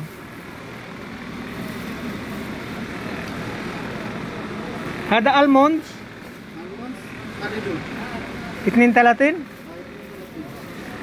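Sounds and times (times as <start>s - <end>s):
faint indistinct voices: 0.0s - 11.0s
shop background noise: 0.0s - 11.0s.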